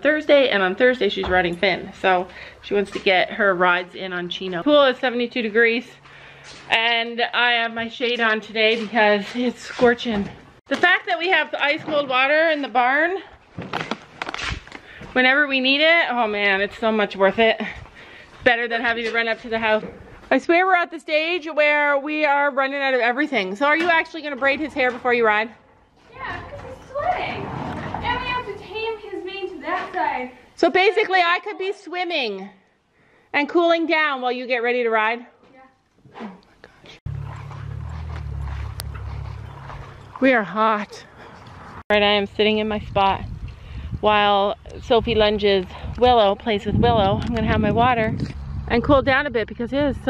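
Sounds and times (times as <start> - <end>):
wind rumble on microphone: 41.3 - 50.0.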